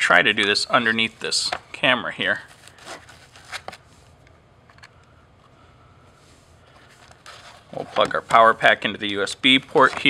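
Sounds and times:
low room hiss: 0.0s - 10.0s.

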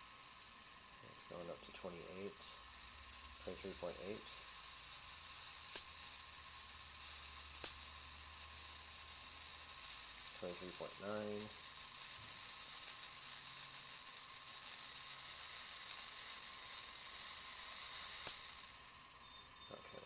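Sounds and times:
electric snap: 0.0s - 19.2s
corona discharge hiss: 0.0s - 20.0s
faint low hum: 18.8s - 20.0s.

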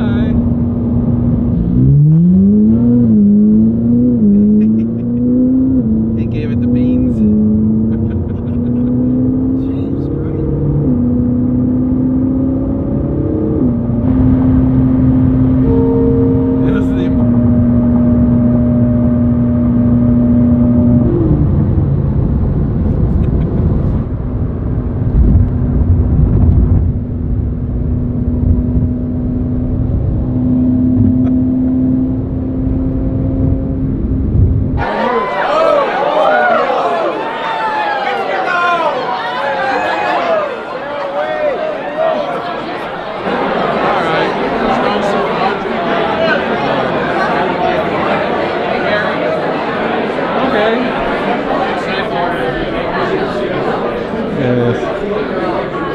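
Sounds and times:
car engine revving through upshifts: 0.0s - 22.1s, 28.1s - 35.8s
road noise: 0.0s - 55.9s.

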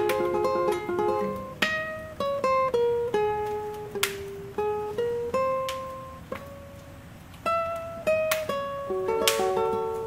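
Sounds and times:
guitar plucking slow melody: 0.0s - 10.0s.

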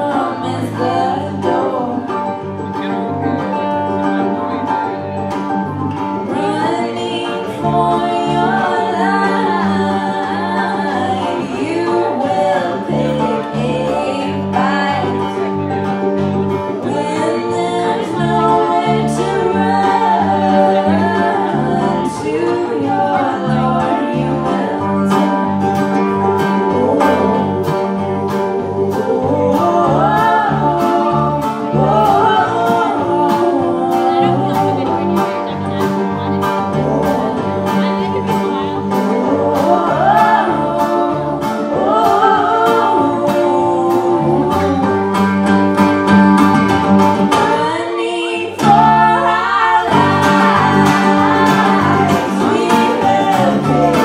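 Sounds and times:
woman singing: 0.0s - 4.7s, 6.2s - 16.0s, 16.7s - 45.7s, 47.2s - 54.0s
mandolin: 0.0s - 54.0s
strummed acoustic guitar: 0.0s - 54.0s
upright bass: 0.0s - 54.0s.

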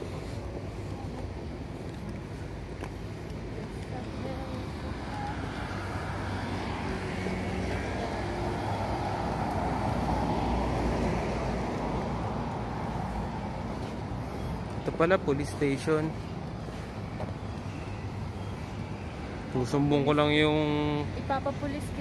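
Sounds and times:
road traffic: 0.0s - 22.0s
vehicle passing: 4.0s - 16.9s.

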